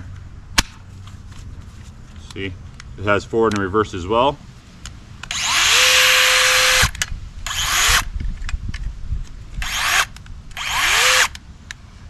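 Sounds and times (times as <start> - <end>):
cut-off tool motor whine: 5.3 - 8.1, 9.6 - 11.4.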